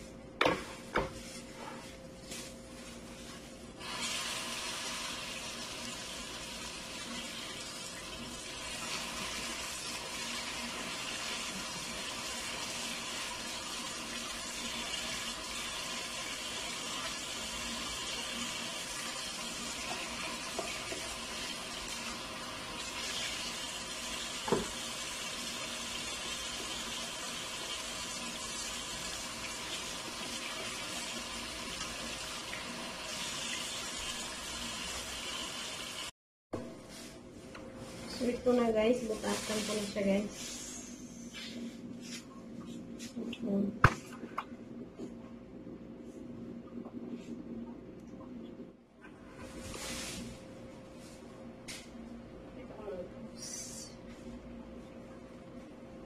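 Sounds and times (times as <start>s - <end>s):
tap water running into sink: 3.9s - 36.1s.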